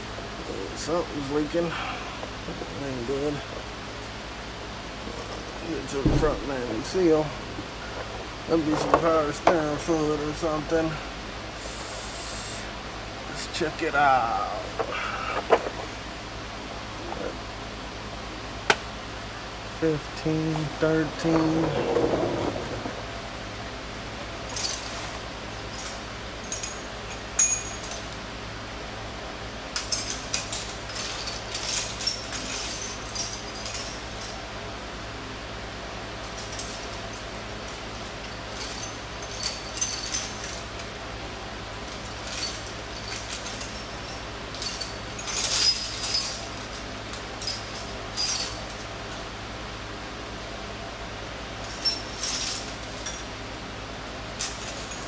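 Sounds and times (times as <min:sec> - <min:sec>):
metal hand tools clinking: 0:25.6 - 0:28.2, 0:29.8 - 0:34.5, 0:36.3 - 0:41.1, 0:41.8 - 0:49.0, 0:51.6 - 0:53.3.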